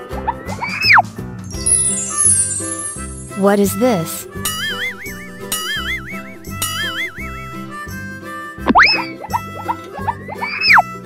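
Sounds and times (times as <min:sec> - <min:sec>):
cheerful children's music: 0:00.0 - 0:11.0
cartoon swoop effect: 0:04.5 - 0:07.7
short falling blips: 0:04.5 - 0:07.8.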